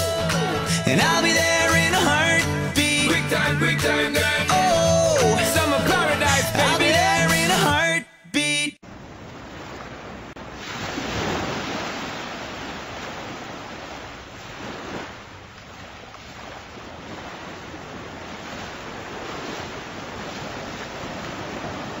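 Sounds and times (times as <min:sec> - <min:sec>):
ocean surf washing in: 0:08.9 - 0:15.4, 0:16.3 - 0:22.0.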